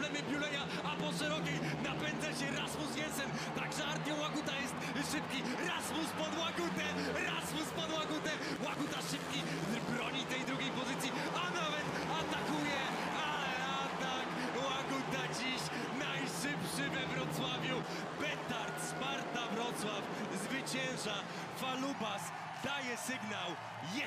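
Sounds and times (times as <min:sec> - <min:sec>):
motorcycle engines racing: 0:00.0 - 0:22.3
commentator's excited voice: 0:00.0 - 0:24.0
crowd noise: 0:00.0 - 0:24.0.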